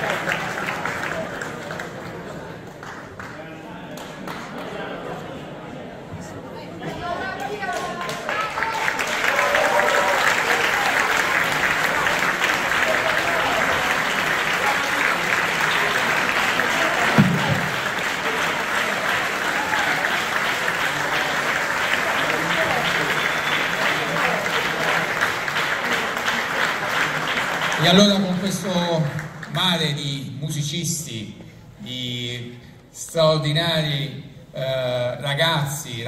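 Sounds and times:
audience applauding: 0:00.0 - 0:05.1, 0:07.3 - 0:29.6.

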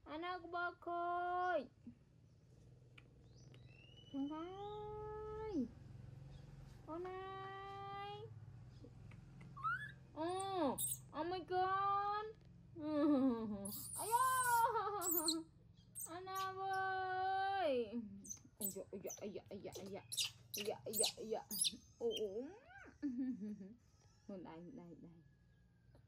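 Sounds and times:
faint low hum: 0:00.0 - 0:26.0
baby monkey whimpering coo: 0:09.6 - 0:11.0, 0:13.6 - 0:15.4, 0:20.1 - 0:23.1.

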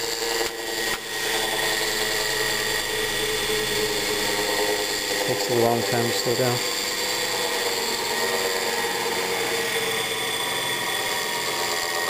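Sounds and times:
electric motor coasting down: 0:00.0 - 0:12.0
rough ball bearings running: 0:00.0 - 0:12.0.

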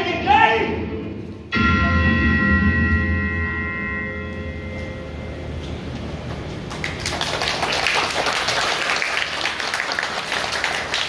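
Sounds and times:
bell ringing: 0:01.5 - 0:06.2.

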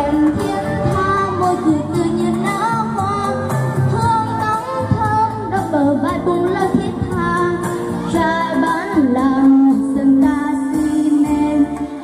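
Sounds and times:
girl singing into microphone: 0:00.0 - 0:12.0
instrumental backing music: 0:00.0 - 0:12.0.

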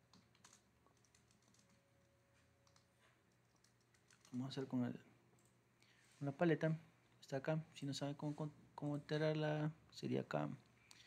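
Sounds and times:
computer keyboard clicks: 0:00.0 - 0:01.8, 0:02.6 - 0:04.4.

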